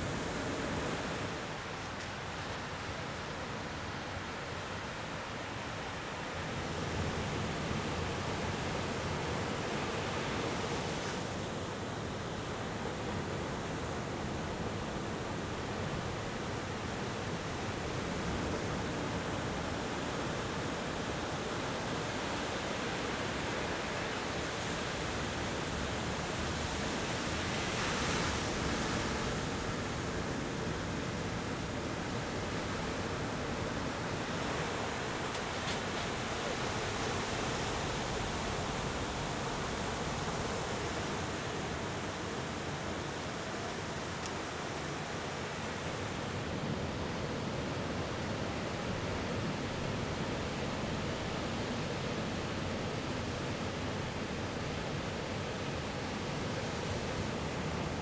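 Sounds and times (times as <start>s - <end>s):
waves breaking on shore: 0.0s - 58.0s.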